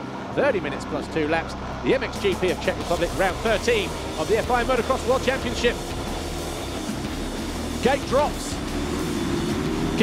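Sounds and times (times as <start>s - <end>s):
motocross engines revving: 0.4s - 10.0s.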